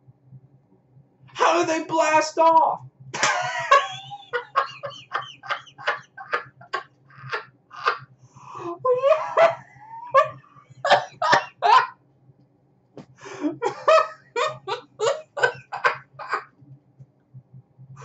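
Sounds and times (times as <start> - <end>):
man laughing hard: 3.2 - 8.0, 8.6 - 11.9, 13.4 - 16.5
drawn-out voiced cries: 4.3 - 8.0, 8.6 - 11.9, 13.6 - 16.4.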